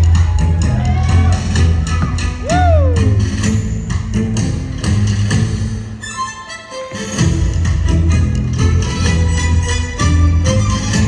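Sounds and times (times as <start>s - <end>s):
music with a steady beat: 0.0s - 11.0s.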